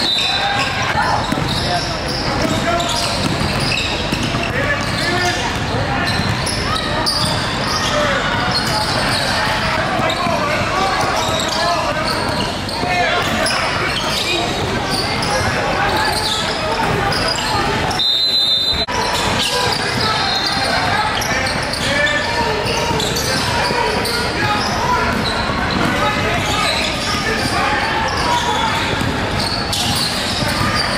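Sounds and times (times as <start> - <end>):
people calling out and talking: 0.0 - 30.9.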